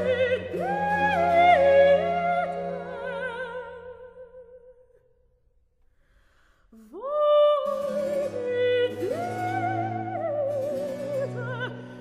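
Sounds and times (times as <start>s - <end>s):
soprano singing opera: 0.0s - 4.9s, 6.8s - 12.0s.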